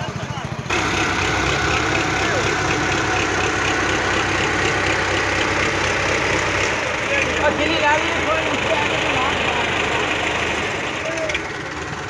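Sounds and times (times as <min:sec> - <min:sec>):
people's voices: 0:00.0 - 0:12.0
tractor diesel engine idling: 0:00.0 - 0:12.0.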